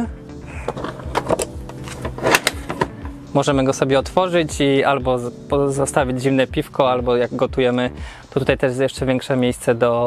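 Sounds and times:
background music with held notes: 0.0s - 10.0s.

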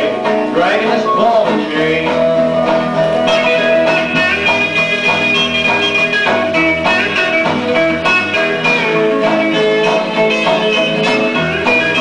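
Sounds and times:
guitar playing quick single notes: 0.0s - 12.0s
rockabilly record playing: 0.0s - 12.0s.

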